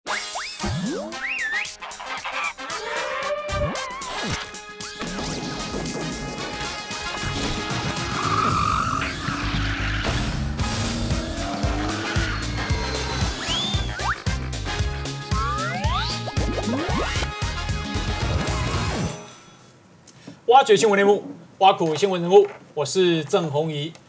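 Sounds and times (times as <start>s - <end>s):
cartoon pitch-sliding sweeps: 0.1s - 2.2s, 15.3s - 17.3s.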